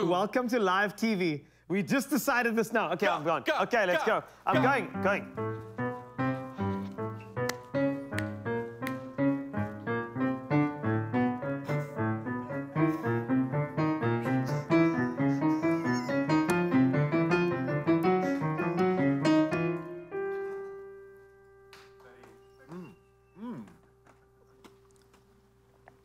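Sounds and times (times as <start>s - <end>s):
grand piano chords and notes: 4.5s - 24.4s.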